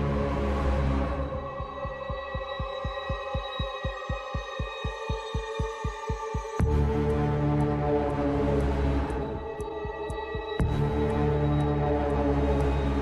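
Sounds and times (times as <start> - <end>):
low throbbing pulse: 0.0 - 13.0.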